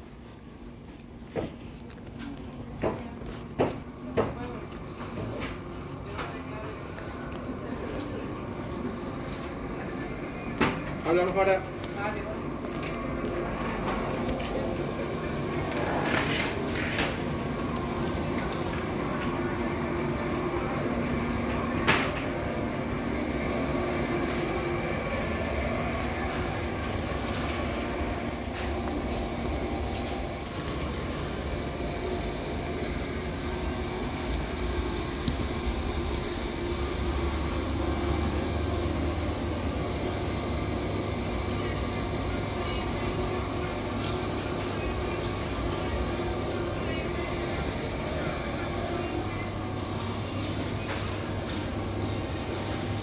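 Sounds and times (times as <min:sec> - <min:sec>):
supermarket hum and rumble: 0:00.0 - 0:53.0.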